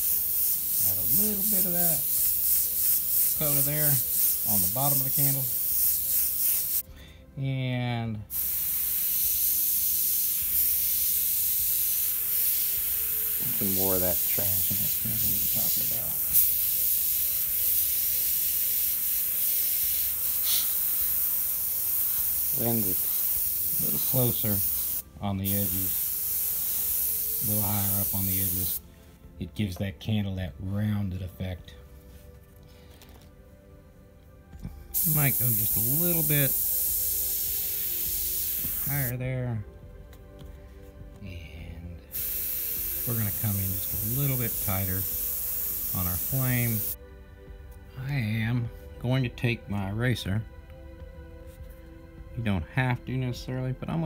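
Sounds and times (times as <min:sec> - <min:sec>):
airbrush hissing: 0:00.0 - 0:06.9, 0:08.3 - 0:28.8, 0:34.9 - 0:39.1, 0:42.1 - 0:47.0.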